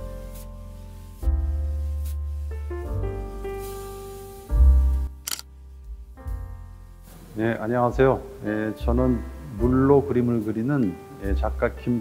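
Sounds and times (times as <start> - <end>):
soft piano music: 0.0 - 12.0
camera shutter click: 5.2 - 5.5.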